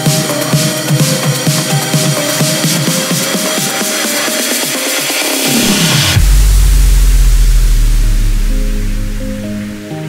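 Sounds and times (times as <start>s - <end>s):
bright noise sweep: 1.9s - 10.0s
deep sub-bass note: 5.5s - 9.9s.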